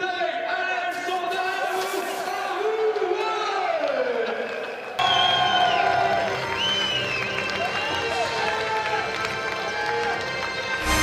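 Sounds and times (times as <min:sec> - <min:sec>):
crowd cheering: 0:01.7 - 0:11.0
music: 0:01.8 - 0:11.0.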